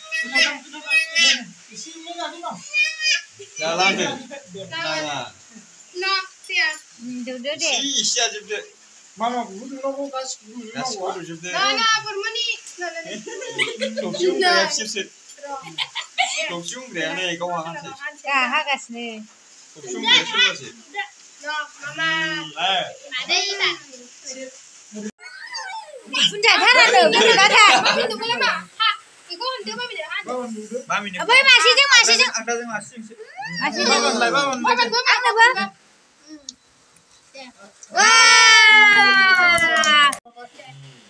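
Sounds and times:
child calling out: 0.0s - 1.4s, 2.6s - 3.3s, 25.2s - 26.5s
high-pitched drawn-out vocal cry: 0.0s - 1.5s, 2.6s - 3.6s, 25.2s - 27.8s, 33.2s - 34.1s
voices: 0.0s - 41.0s.

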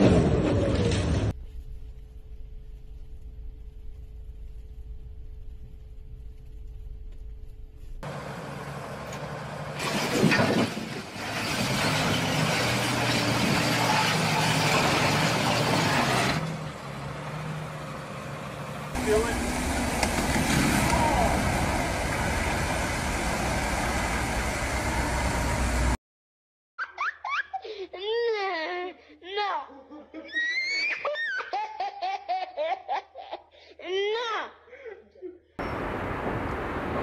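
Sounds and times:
diesel engine running: 7.7s - 26.0s
loud clatter: 9.8s - 16.4s.

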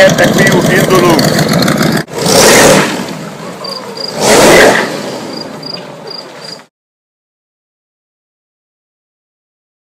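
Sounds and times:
car engine accelerating hard: 0.0s - 5.6s.

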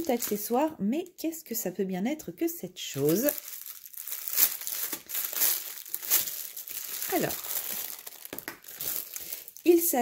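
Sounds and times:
plastic bag crinkling: 0.0s - 0.6s, 2.9s - 10.0s.

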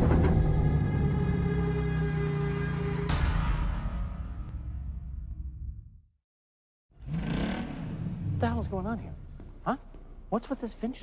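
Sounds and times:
car engine revving: 7.0s - 9.1s.

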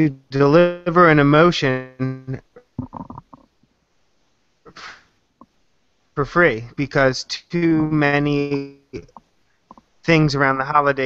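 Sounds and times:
breath-like rush of noise: 4.7s - 5.1s
man speaking in fragments: 6.2s - 9.1s, 10.0s - 11.0s.

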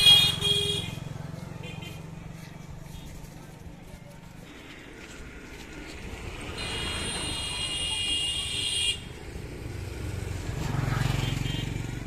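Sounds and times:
vehicle horn: 0.0s - 2.0s, 6.6s - 9.1s, 11.1s - 11.8s
vehicle engine passing by: 9.2s - 12.0s.

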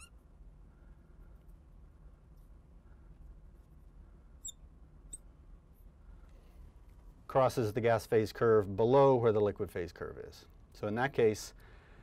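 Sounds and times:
marker squeaking on glass: 0.0s - 0.2s, 4.4s - 5.3s
low steady hum: 0.0s - 12.0s.

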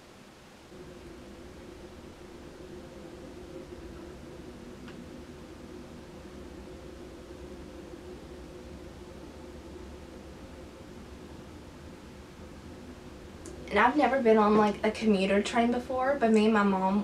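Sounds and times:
room hum: 0.0s - 17.0s
low rumble: 0.7s - 17.0s.

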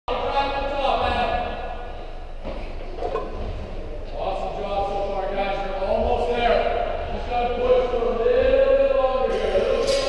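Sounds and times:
voices echoing in a hall: 0.1s - 10.0s.

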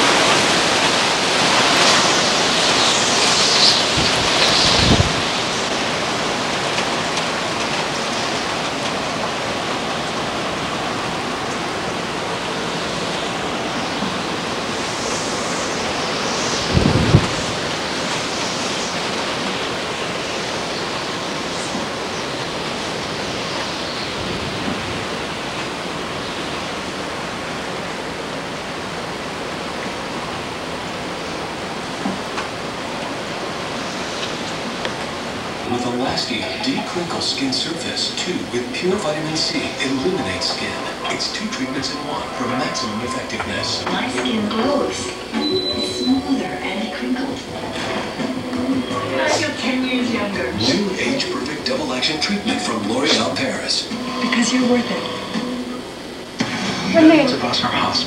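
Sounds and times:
wind gusts buffeting microphone: 0.0s - 41.0s
strong wind rushing: 0.0s - 51.7s.

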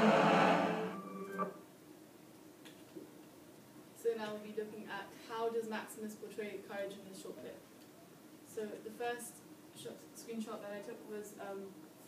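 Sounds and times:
soundtrack music with held notes: 0.0s - 1.6s.

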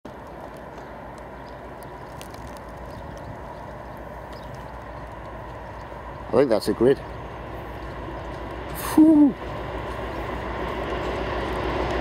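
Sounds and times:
distant diesel locomotive rumble: 0.1s - 12.0s.

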